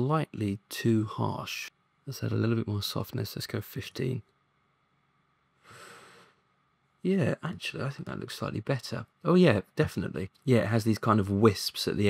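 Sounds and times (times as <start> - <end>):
soft breath: 5.6 - 6.5.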